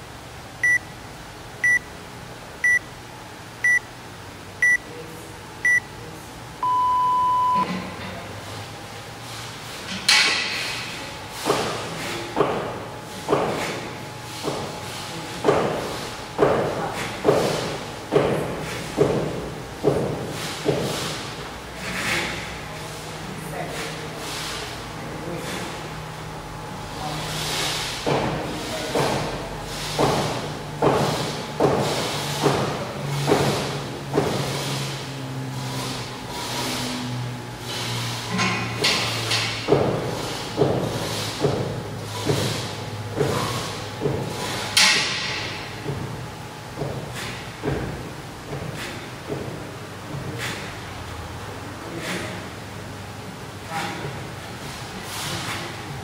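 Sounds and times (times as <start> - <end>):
effort breaths: 47.0 - 47.6, 48.5 - 49.2, 50.2 - 50.9, 53.6 - 55.8.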